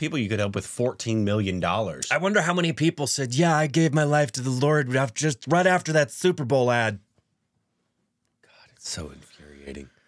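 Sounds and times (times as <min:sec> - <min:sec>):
man speaking: 0:00.0 - 0:07.0, 0:08.7 - 0:10.0.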